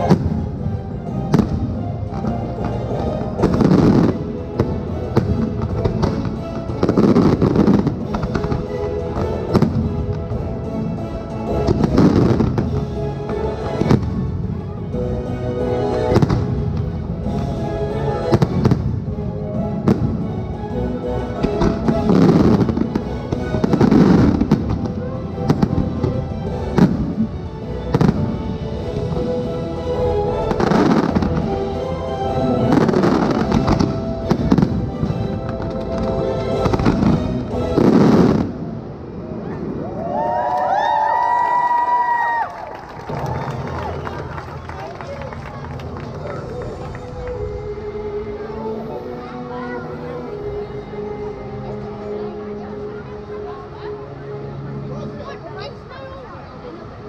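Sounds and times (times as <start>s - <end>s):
fireworks banging and crackling: 0.0s - 10.5s, 11.4s - 14.6s, 15.9s - 20.3s, 21.4s - 39.8s
music playing: 0.0s - 39.7s, 42.6s - 57.0s
fireworks bangs: 21.4s - 29.2s, 32.5s - 38.8s.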